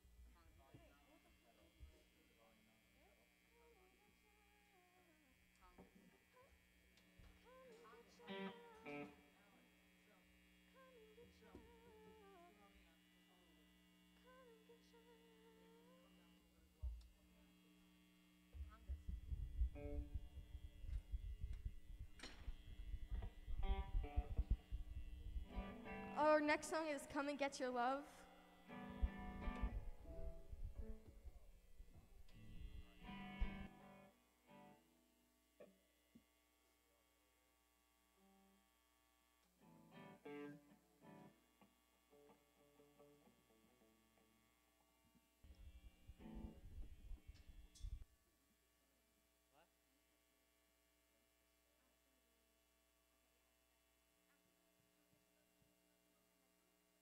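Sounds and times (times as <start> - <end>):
amplifier electrical hum: 0.0 - 37.4, 38.0 - 48.1
electric guitar strumming: 18.6 - 35.0, 39.6 - 41.4, 45.5 - 48.0.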